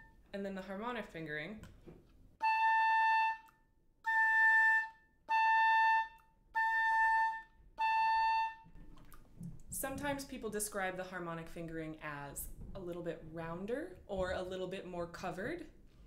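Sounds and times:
oboe playing held notes: 2.4s - 8.8s.

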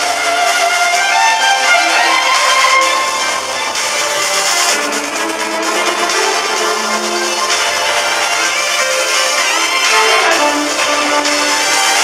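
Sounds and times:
amplified electric violin melody: 0.0s - 12.0s.

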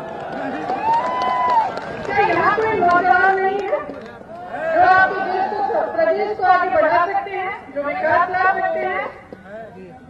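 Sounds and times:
woman speaking into microphones: 2.1s - 3.9s, 4.8s - 9.2s.

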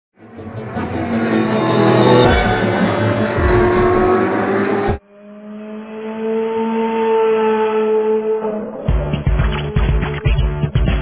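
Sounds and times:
music: 0.2s - 5.0s, 8.9s - 11.0s
steady engine note: 0.2s - 6.4s
car engine revving: 0.2s - 10.6s.

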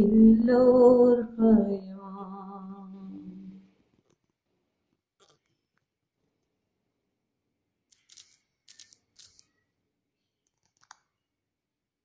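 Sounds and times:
woman singing unaccompanied: 0.0s - 3.6s.

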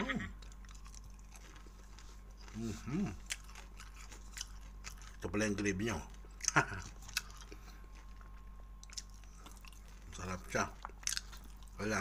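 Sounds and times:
person chewing food: 0.4s - 12.0s.

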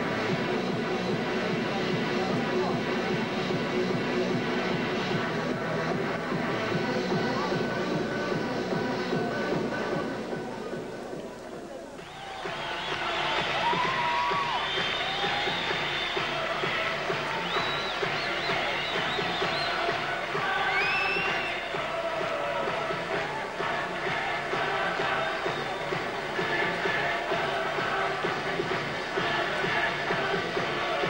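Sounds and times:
arena crowd cheering: 12.0s - 31.0s.

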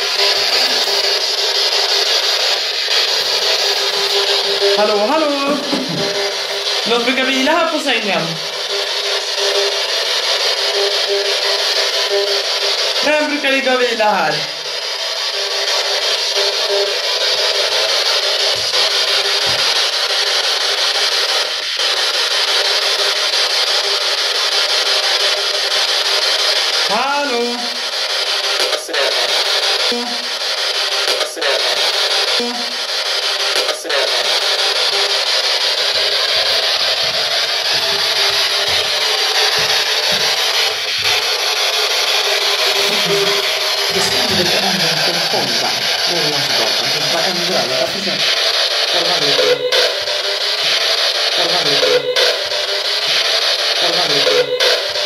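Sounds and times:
loud radio static: 0.0s - 55.0s.

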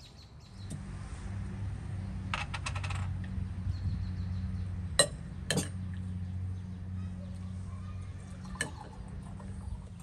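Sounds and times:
steady low hum: 0.5s - 10.0s
tableware clinking: 5.0s - 5.8s.

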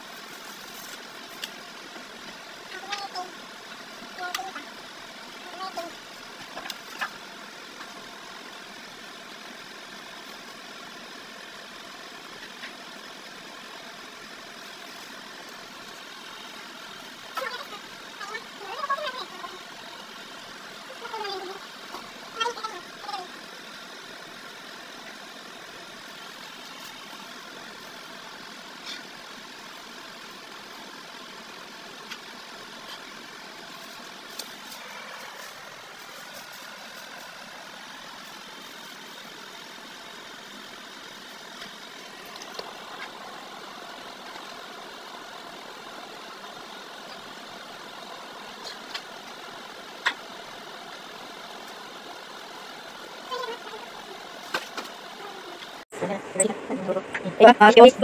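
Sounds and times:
machine hum: 0.0s - 58.0s.

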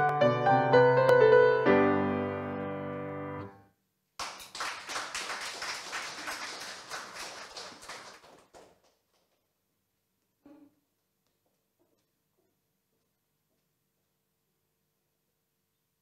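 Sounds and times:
grand piano playing: 0.0s - 3.6s
audience applause: 4.2s - 9.3s.

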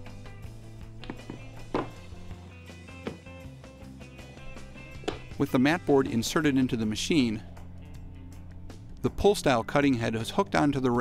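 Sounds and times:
background music: 0.0s - 11.0s
metal cutter thumping on wooden table: 1.0s - 2.0s.

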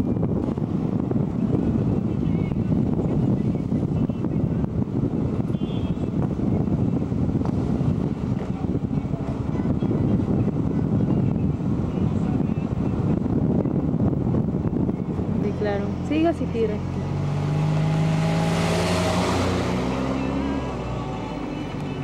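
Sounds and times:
car driving rumble: 0.0s - 22.0s
road and wind noise on microphone: 0.0s - 22.0s.

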